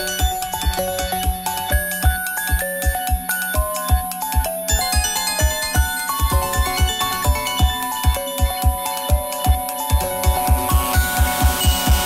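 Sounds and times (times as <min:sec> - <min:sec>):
bass drum beat: 0:00.0 - 0:12.0.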